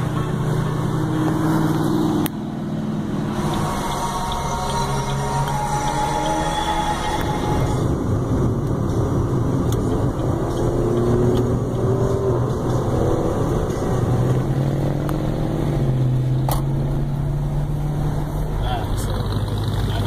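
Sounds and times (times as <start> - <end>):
car engines accelerating: 0.0 - 20.0
road noise hum: 0.0 - 20.0.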